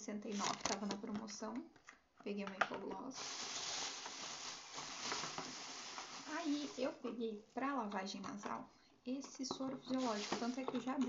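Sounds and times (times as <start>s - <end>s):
plastic bag rustling: 3.2s - 7.0s, 9.9s - 10.8s.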